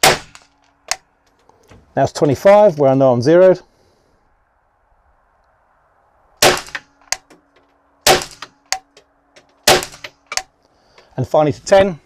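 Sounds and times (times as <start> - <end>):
rifle shots: 0.0 - 0.5, 6.4 - 7.3, 8.0 - 8.8, 9.6 - 10.4.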